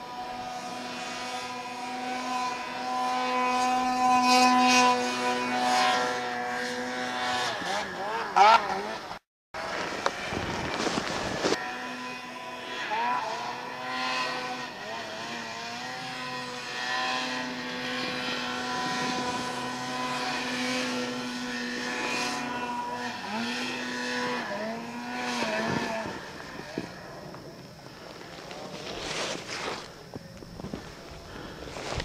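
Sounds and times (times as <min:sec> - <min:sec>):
snowmobile engine revving high: 0:00.0 - 0:29.9.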